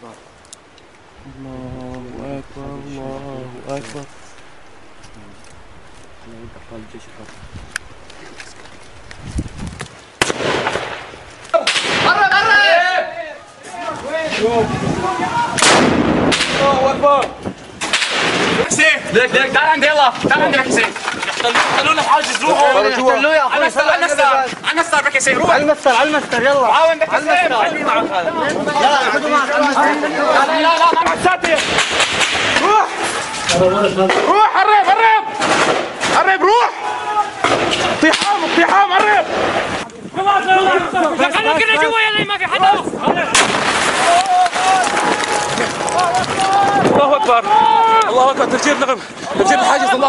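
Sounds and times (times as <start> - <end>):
rocket launcher blast: 10.2 - 12.2, 15.6 - 16.7, 43.3 - 44.2
several voices shouting: 11.5 - 15.6, 36.2 - 39.3, 40.2 - 48.4
men shouting: 36.2 - 39.3, 44.0 - 48.4.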